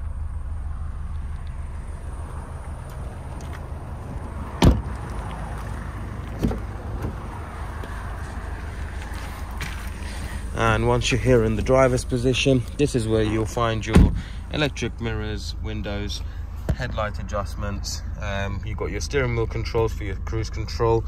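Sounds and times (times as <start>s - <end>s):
steady low rumble: 0.0s - 21.0s
car door latch clunk: 4.6s - 5.0s, 6.3s - 7.2s, 13.9s - 14.2s
car door shutting thud: 4.6s - 5.0s, 6.4s - 7.2s, 13.9s - 14.3s.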